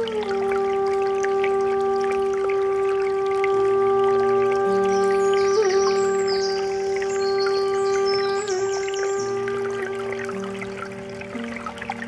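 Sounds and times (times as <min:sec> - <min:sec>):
brook trickling: 0:00.0 - 0:12.0
flute long steady note: 0:00.0 - 0:12.0.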